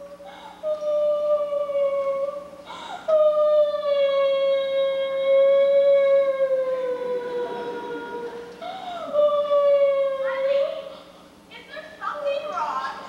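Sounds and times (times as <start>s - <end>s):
singer breath: 0.2s - 0.7s, 2.6s - 3.1s, 8.3s - 9.2s.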